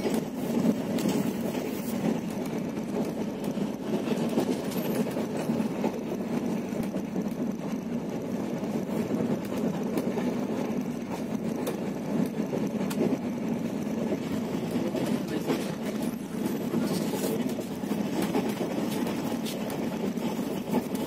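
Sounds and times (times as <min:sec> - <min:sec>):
train rumbling on track: 0:00.0 - 0:21.0
wheels clicking on rails: 0:00.0 - 0:21.0.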